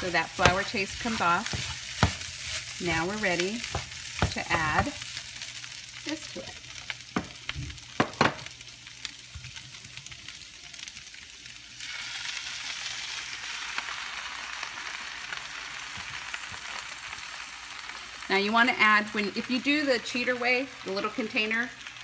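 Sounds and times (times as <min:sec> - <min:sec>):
meat sizzling in a pan: 0:00.0 - 0:22.0.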